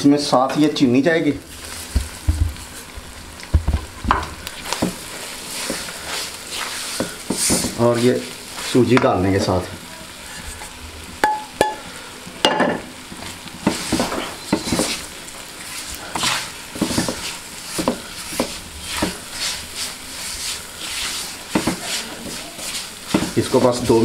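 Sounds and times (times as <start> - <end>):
sizzling ghee: 0.6 - 24.0
spatula scraping a wok: 4.6 - 10.8, 13.6 - 24.0.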